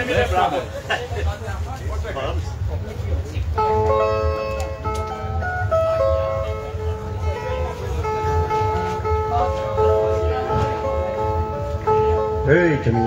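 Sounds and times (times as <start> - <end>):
string instruments picking melody: 2.8 - 13.0.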